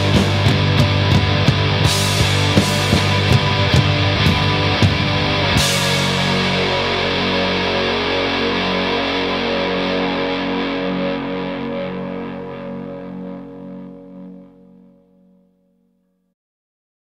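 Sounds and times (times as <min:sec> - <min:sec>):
distorted electric guitar chord: 0:00.0 - 0:16.0.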